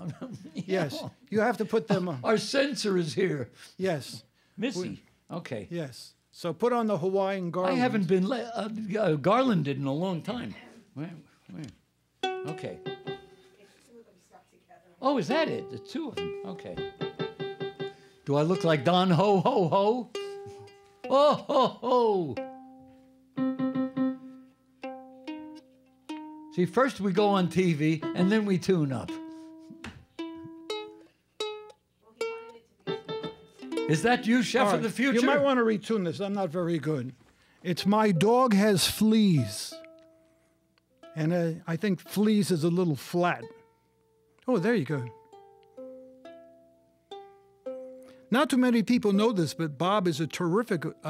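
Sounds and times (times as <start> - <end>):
ukulele strings plucked: 12.2 - 13.4, 15.3 - 21.3, 22.0 - 22.8, 23.4 - 35.5, 44.5 - 46.4.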